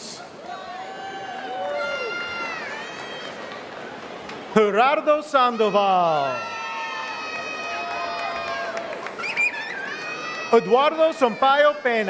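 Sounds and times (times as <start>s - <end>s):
large crowd noise: 0.0s - 12.0s.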